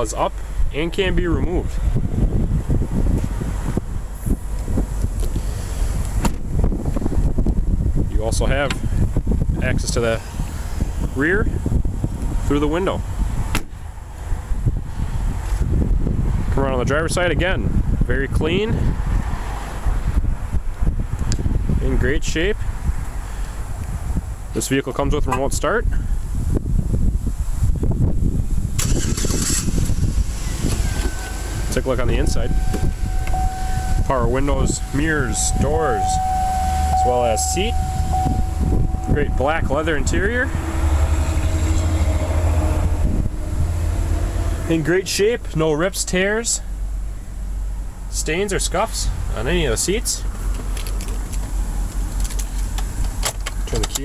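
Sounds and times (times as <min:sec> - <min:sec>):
wind buffeting microphone: 0:00.0 - 0:48.1.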